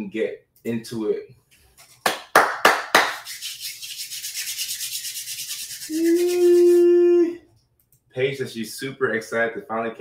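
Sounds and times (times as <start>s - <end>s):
palms rubbing together: 1.6s - 2.3s, 2.9s - 7.0s.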